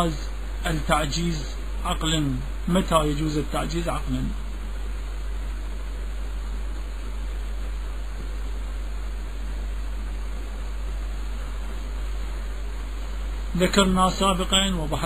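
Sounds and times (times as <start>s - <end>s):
constant low hum: 0.0s - 15.0s
steady hiss: 0.0s - 15.0s.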